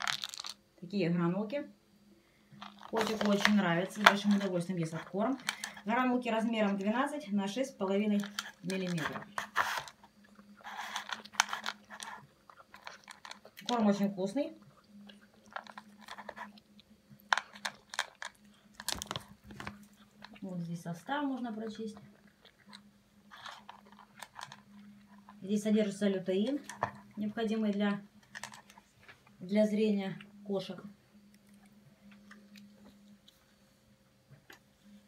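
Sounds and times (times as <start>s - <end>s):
cat chewing dry kibble: 2.5s - 5.9s, 8.2s - 20.6s, 21.6s - 25.4s, 28.2s - 29.4s.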